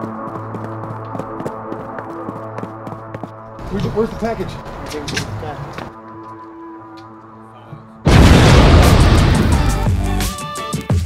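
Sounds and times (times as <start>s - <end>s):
loud rumbling explosion boom: 8.1s - 9.9s.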